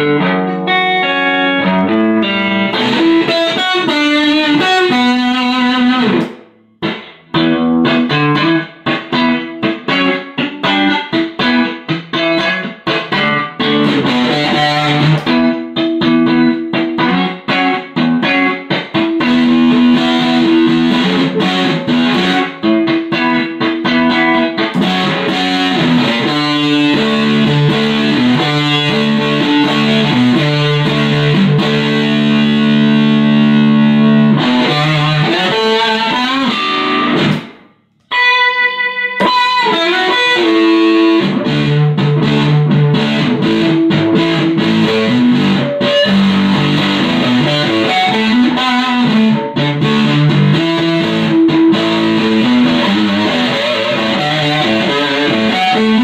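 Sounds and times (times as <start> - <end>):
distorted electric guitar: 0.0 - 56.0.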